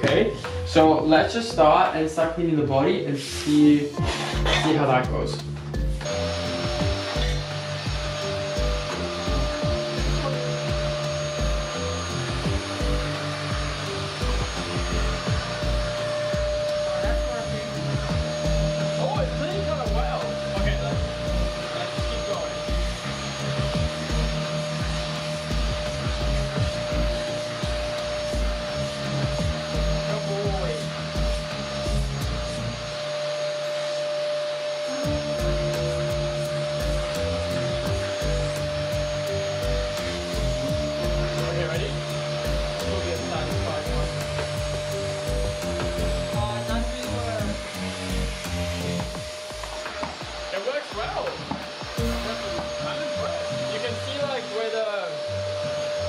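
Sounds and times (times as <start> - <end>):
background music with beat: 0.0 - 33.2, 34.9 - 54.4
vacuum cleaner whining: 0.0 - 56.0.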